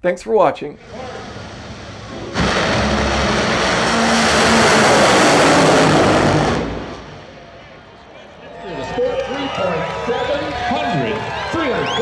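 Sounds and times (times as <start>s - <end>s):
dragster engines roaring: 0.8s - 11.7s.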